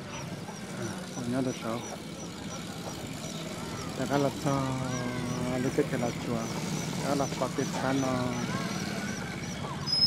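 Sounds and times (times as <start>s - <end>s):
faint high chirp: 0.1s - 10.0s.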